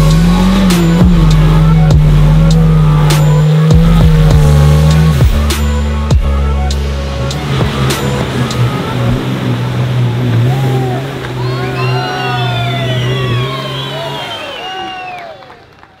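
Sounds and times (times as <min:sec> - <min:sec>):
pickup engine churning mud: 0:00.0 - 0:06.1, 0:06.8 - 0:15.1
spectators shouting and cheering: 0:07.7 - 0:16.0.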